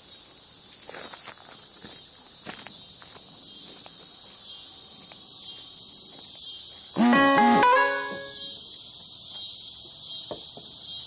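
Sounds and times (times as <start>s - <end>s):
crickets chirping: 0.0s - 11.0s
footsteps crunching on gravel: 0.7s - 6.8s.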